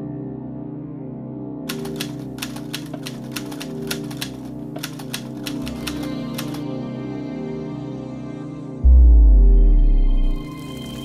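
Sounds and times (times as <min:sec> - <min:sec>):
typewriter key clicks: 0:01.7 - 0:06.6.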